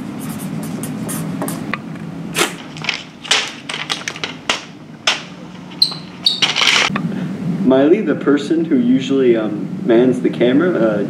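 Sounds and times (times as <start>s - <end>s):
paper rustling and scraping: 2.4s - 6.9s
high squeaks: 5.4s - 6.9s.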